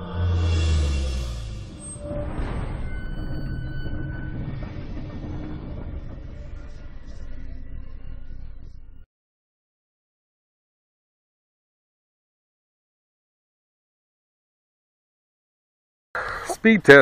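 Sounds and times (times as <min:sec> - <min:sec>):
low dense rumble: 0:00.0 - 0:09.0.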